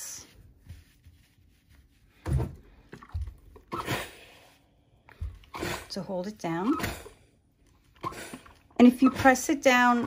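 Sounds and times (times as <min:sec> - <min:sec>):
fabric rustling: 0:00.3 - 0:02.3.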